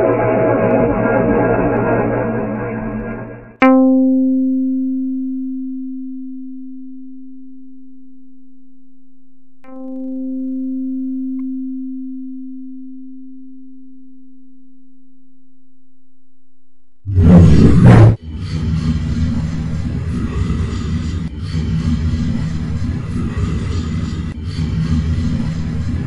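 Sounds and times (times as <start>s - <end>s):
dense low rumbling noise: 17.1s - 26.0s.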